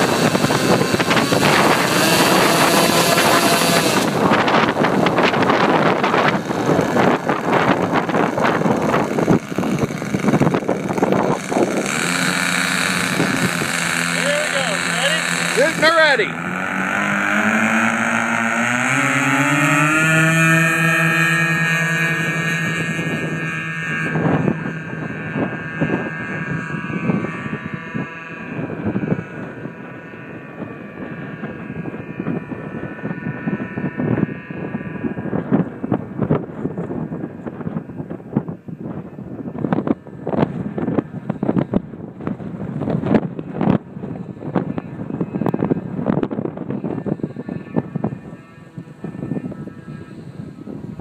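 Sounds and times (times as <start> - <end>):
model plane engines revving: 0.0 - 51.0
wind buffeting microphone: 0.0 - 51.0.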